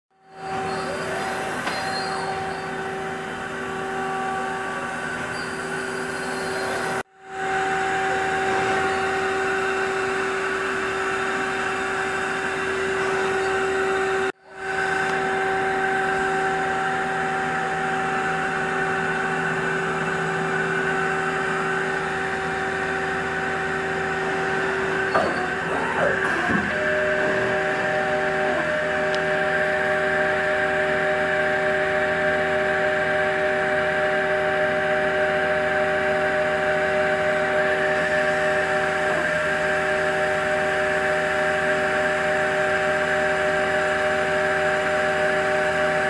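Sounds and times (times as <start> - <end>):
lathe machine hum: 0.2 - 46.0.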